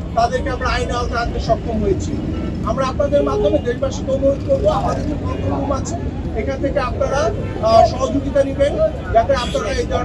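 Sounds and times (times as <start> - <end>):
man speaking into microphones: 0.0 - 10.0.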